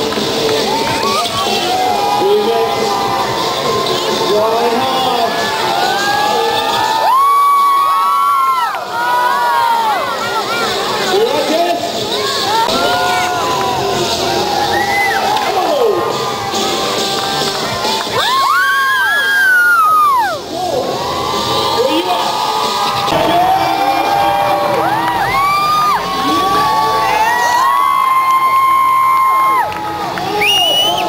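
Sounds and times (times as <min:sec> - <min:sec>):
crowd cheering and whooping: 0:00.0 - 0:11.0, 0:12.1 - 0:31.0.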